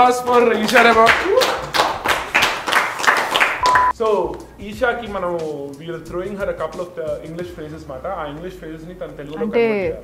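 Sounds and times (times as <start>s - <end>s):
people clapping: 0.0s - 4.4s.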